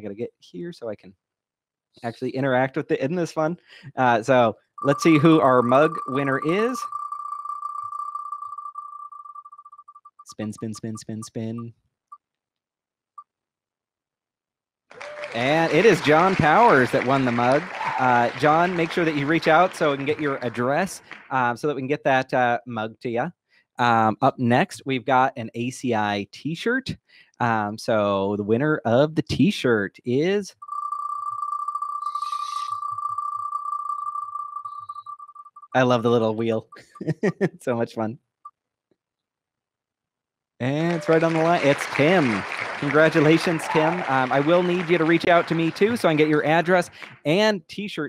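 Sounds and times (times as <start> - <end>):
prize wheel ticking: 4.3 - 11.7, 15.4 - 21.4, 30.6 - 37.2, 42.9 - 46.9.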